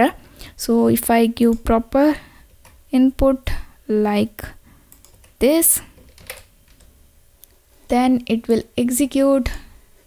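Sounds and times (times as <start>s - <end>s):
faint keyboard keystrokes: 6.0s - 6.9s.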